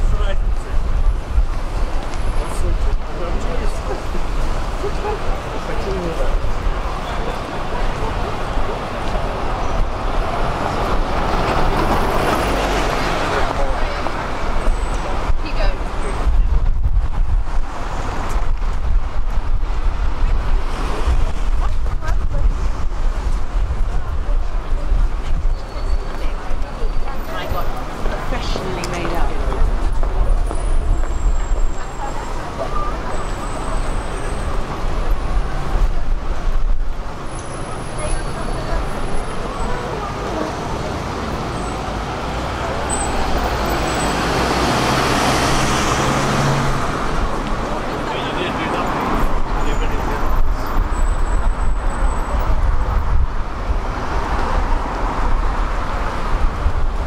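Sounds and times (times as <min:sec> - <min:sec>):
indistinct pedestrian voices: 0:00.0 - 0:57.0
passers-by talking: 0:00.0 - 0:57.0
road traffic: 0:00.0 - 0:57.0
vehicle passing: 0:37.6 - 0:57.0.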